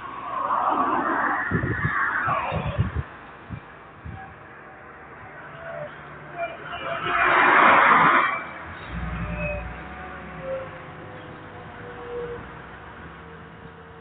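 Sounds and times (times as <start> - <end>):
car road noise: 0.0 - 14.0.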